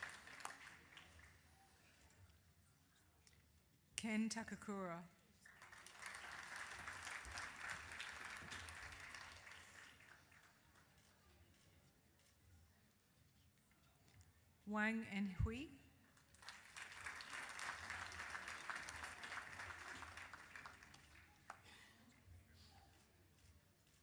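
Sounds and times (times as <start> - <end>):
audience applause: 0.0 - 1.4, 5.5 - 10.6, 16.4 - 21.6.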